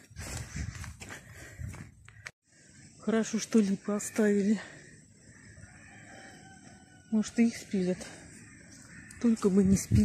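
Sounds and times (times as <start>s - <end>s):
footsteps on paving stones: 0.0s - 2.4s.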